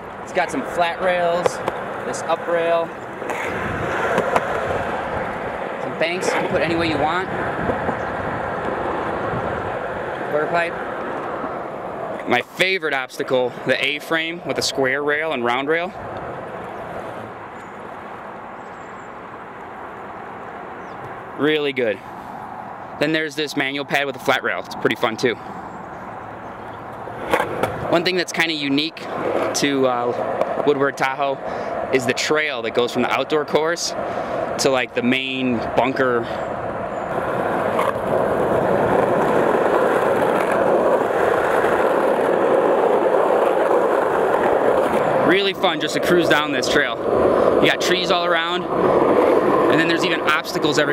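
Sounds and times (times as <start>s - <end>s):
skateboard wheels rolling: 0.0s - 22.8s, 25.5s - 50.9s.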